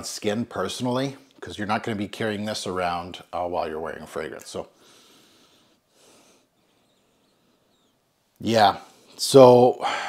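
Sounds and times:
faint sniff: 4.8 - 8.0.

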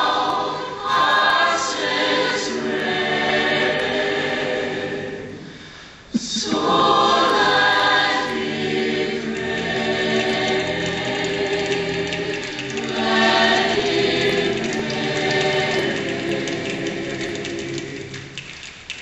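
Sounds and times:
a cappella choir singing harmony: 0.0 - 18.6.

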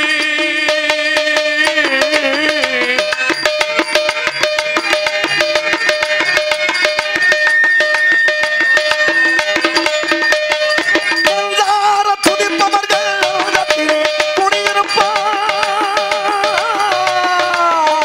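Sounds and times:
hand drums fast rhythm: 0.0 - 18.0
held melodic notes: 0.0 - 18.0
small hand cymbals: 0.0 - 18.0
wavering melody line: 0.0 - 18.0.

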